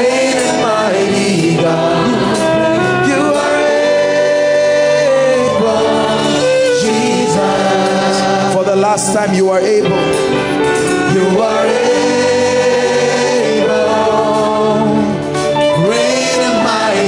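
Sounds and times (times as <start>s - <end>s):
person singing gospel song: 0.0s - 17.0s.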